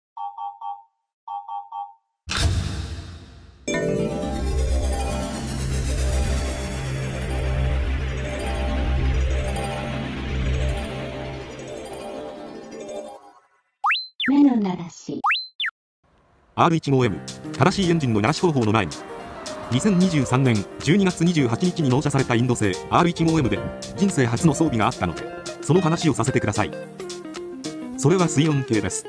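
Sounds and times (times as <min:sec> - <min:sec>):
background music: 0:03.7 - 0:13.5, 0:16.9 - 0:29.0.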